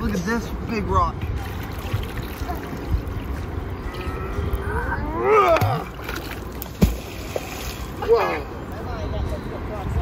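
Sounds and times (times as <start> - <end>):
flowing river water: 0.0 - 8.9.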